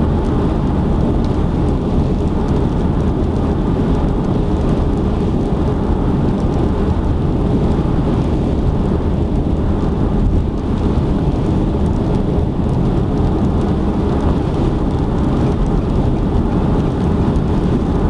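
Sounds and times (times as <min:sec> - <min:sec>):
tyre and road noise rumble: 0:00.0 - 0:18.0.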